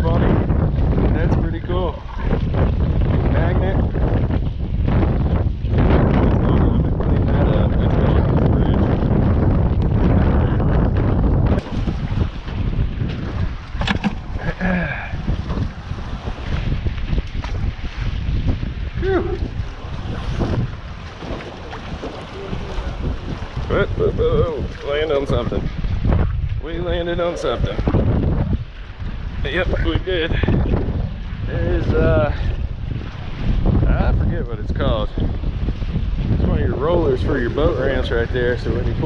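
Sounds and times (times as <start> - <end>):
choppy water: 0.0 - 39.0
wind buffeting microphone: 0.0 - 39.0.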